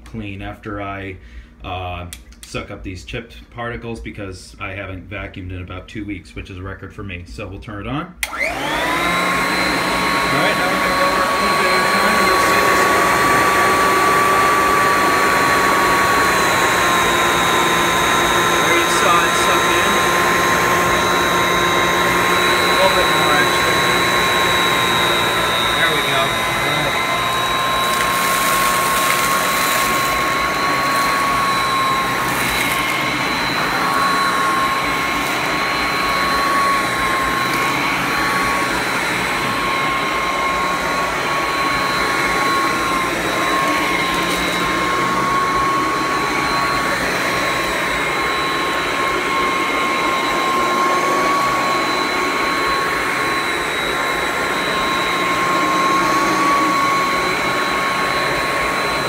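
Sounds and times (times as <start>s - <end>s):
vacuum cleaner motor whine: 8.2s - 59.0s.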